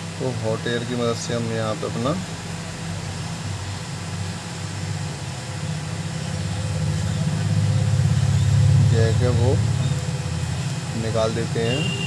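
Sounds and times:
hot air gun blower humming: 0.0 - 12.0.

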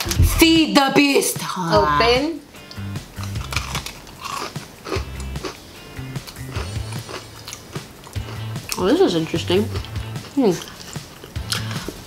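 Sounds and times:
background music with bass: 0.0 - 0.8, 1.7 - 12.0
chewing crunchy cookie: 2.7 - 8.8, 9.8 - 12.0.

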